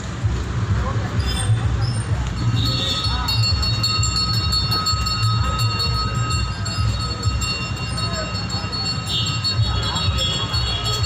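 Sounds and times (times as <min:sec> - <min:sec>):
distant voices: 0:00.0 - 0:11.0
low uneven street rumble: 0:00.0 - 0:11.0
thin steady high tones: 0:02.4 - 0:11.0.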